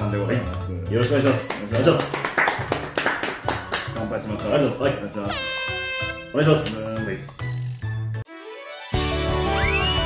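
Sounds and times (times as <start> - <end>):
light background music: 0.0 - 10.0
hands clapping quickly: 1.0 - 4.0.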